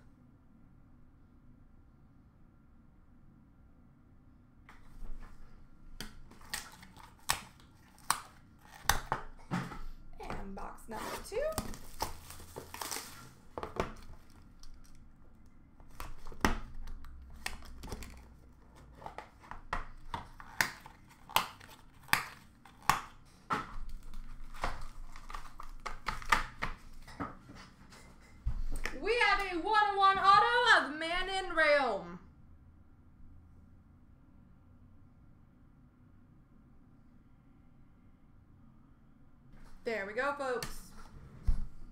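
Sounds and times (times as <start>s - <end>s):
packaging crinkling: 6.1s - 9.4s, 10.3s - 27.2s.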